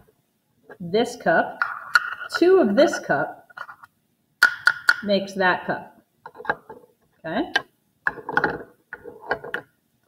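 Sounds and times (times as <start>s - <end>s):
measuring cups clattering: 1.6s - 3.8s, 4.4s - 5.1s.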